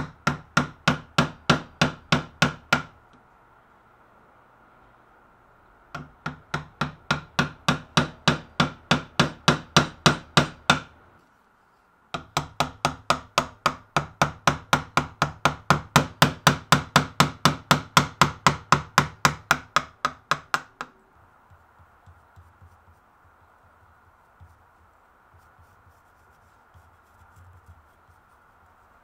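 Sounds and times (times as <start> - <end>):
mallet tapping chisel into wood: 0.0 - 3.0, 5.9 - 10.9, 12.1 - 24.6.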